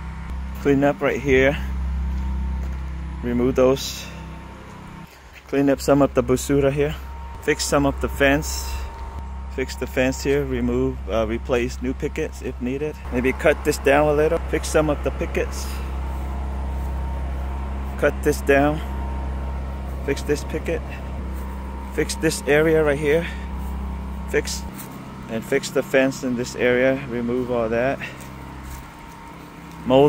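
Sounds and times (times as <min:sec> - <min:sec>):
motor humming: 0:00.0 - 0:30.0
man talking: 0:00.6 - 0:01.7, 0:03.2 - 0:04.2, 0:05.5 - 0:08.9, 0:09.5 - 0:15.9, 0:17.9 - 0:19.0, 0:20.0 - 0:21.2, 0:21.9 - 0:23.5, 0:24.3 - 0:28.2, 0:29.8 - 0:30.0
faint thin whine: 0:05.8 - 0:30.0.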